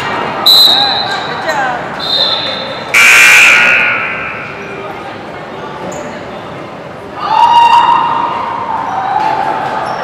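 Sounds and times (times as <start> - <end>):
crowd and player voices: 0.0 - 10.0
referee's whistle: 0.5 - 1.3, 2.0 - 4.6.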